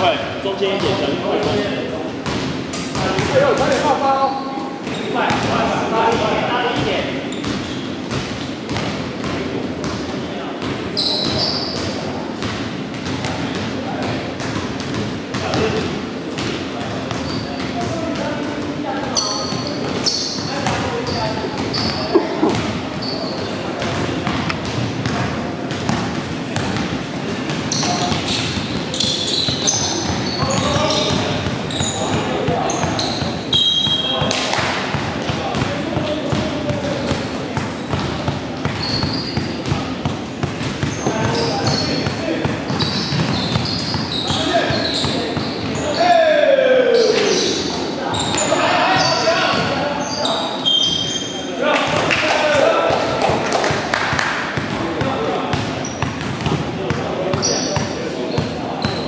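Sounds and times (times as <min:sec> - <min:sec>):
shoe squeaks: 0:04.1 - 0:05.4, 0:07.1 - 0:08.1, 0:10.9 - 0:12.0, 0:17.1 - 0:17.8, 0:19.1 - 0:23.7, 0:27.6 - 0:34.4, 0:38.6 - 0:39.9, 0:40.7 - 0:46.2, 0:46.9 - 0:51.5, 0:55.8 - 0:56.5, 0:57.4 - 0:59.0
basketball bouncing: 0:10.6 - 0:15.8, 0:21.6 - 0:22.8, 0:23.8 - 0:45.8, 0:54.5 - 0:59.0.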